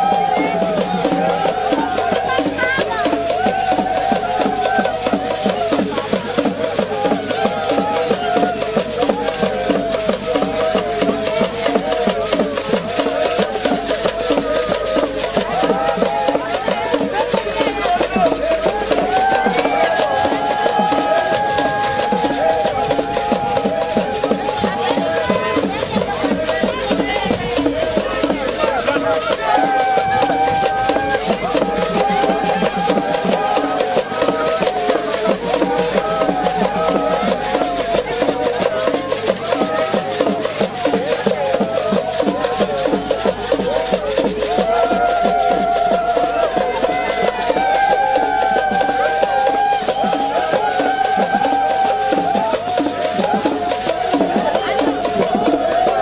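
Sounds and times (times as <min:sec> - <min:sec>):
hand drums beating: 0:00.0 - 0:56.0
shaken rattles: 0:00.0 - 0:56.0.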